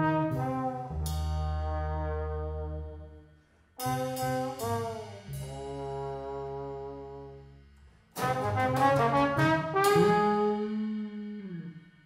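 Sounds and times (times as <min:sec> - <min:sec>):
trombone sliding down: 0:08.1 - 0:10.9.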